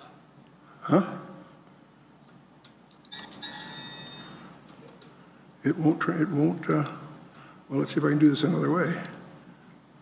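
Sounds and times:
electronic chime: 3.1 - 4.5.

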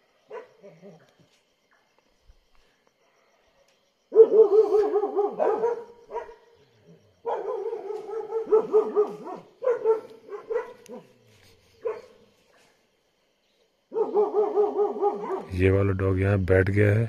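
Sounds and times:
dog yelping: 4.1 - 6.5, 7.2 - 11.2, 11.8 - 12.2, 13.9 - 15.5.

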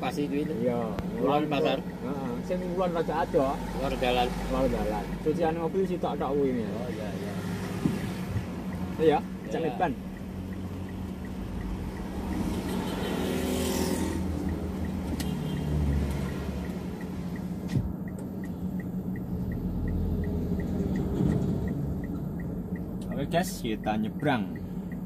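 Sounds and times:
car engine hum: 0.0 - 25.0
turn signal ticking: 0.0 - 25.0
vehicles driving past: 0.0 - 25.0.

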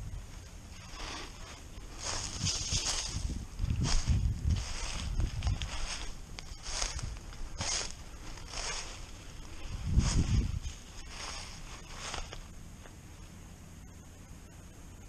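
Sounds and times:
footsteps crunching through dry leaves: 0.7 - 13.0.

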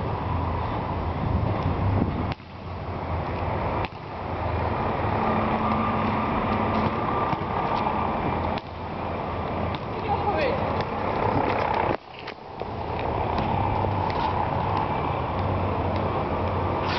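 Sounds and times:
low urban rumble: 0.0 - 16.9.

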